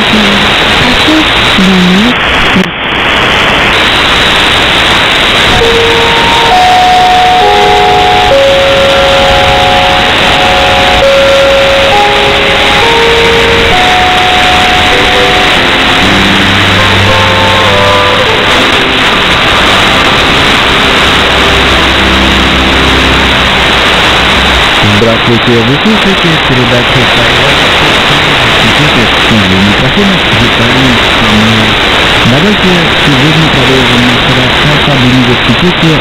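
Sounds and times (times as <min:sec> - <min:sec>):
radio static hiss: 0:00.0 - 0:36.0
instrumental music over radio: 0:03.7 - 0:31.2.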